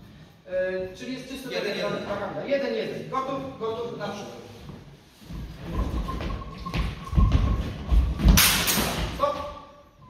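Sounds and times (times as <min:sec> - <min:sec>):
feet stamping on wooden floor: 0:05.3 - 0:08.4.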